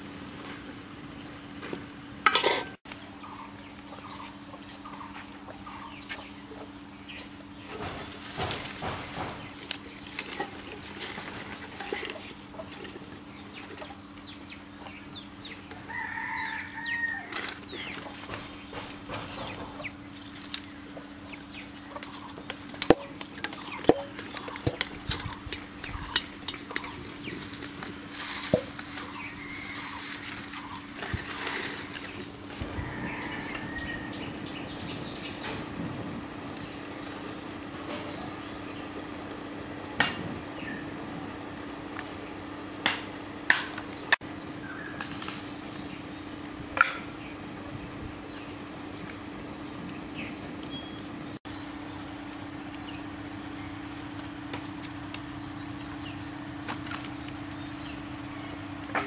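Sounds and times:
steady low hum: 0.0 - 59.0
chickens clucking: 2.3 - 35.8.

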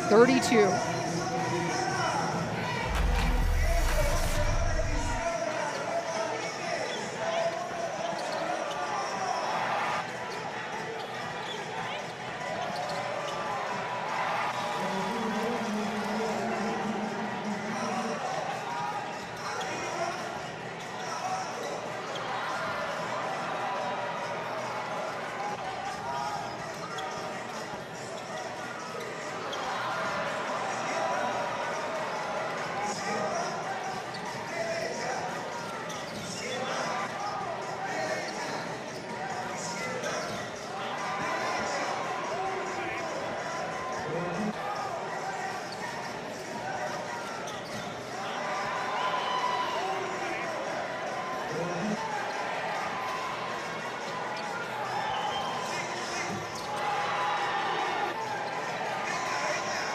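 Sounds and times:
murmur of crowd voices: 0.0 - 59.9.

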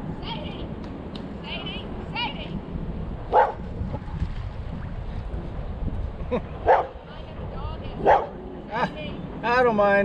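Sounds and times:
wind noise on microphone: 0.0 - 10.0
dog barking: 3.3 - 3.6, 6.6 - 7.0, 8.0 - 8.4.

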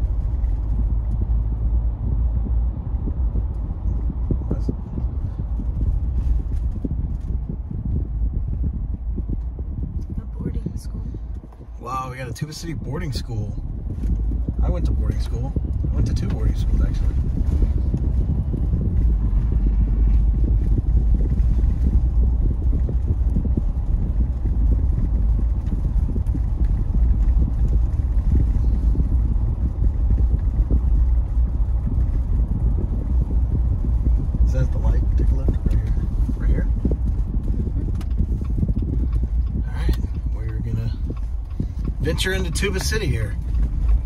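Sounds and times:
car engine and tyre rumble: 0.0 - 44.0.

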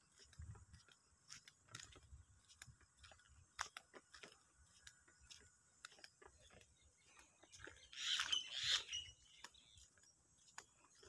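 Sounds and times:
bird harsh raspy call: 7.8 - 9.4.

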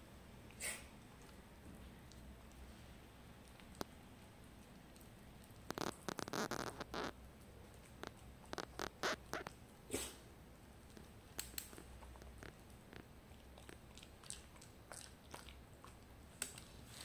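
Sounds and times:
puppy licking and nibbling: 1.1 - 9.7, 10.8 - 17.0.

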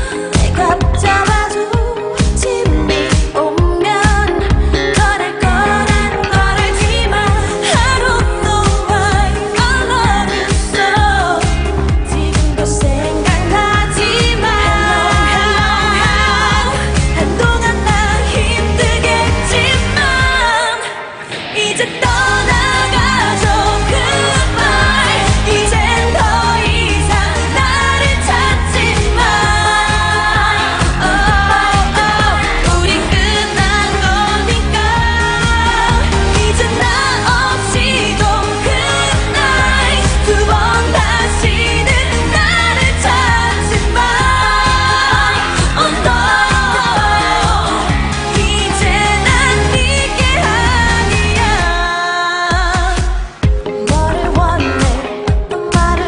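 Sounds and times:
dance-pop backing track: 0.0 - 56.0
women singing into microphones: 0.0 - 56.0.

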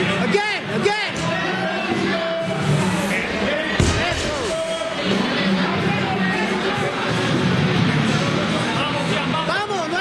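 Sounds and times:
background music: 0.0 - 10.0
people talking: 3.0 - 7.4.

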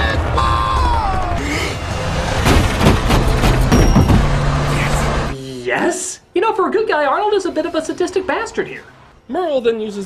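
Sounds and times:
car engine droning: 0.0 - 5.4
sharp knocks: 2.4 - 4.5.

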